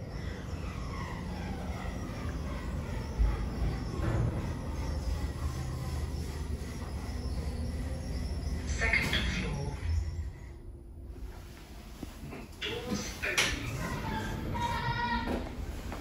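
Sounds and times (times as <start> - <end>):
lift car rumbling: 0.0 - 16.0.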